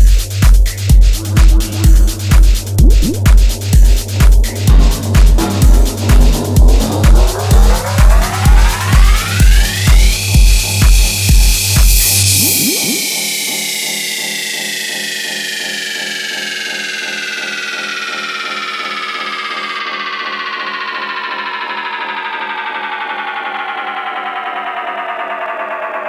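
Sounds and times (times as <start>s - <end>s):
synthesizer tone gliding down: 1.2s - 3.4s, 12.2s - 26.0s
rapidly pulsing synth chord: 12.2s - 20.7s.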